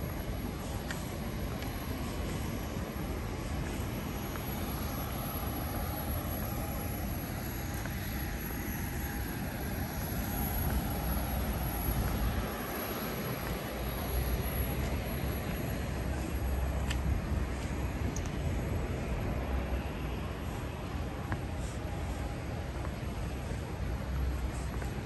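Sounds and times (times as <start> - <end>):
airport ambience rumble: 0.0 - 25.0
distant jet engines: 0.0 - 25.0
faint steady whine: 0.0 - 25.0.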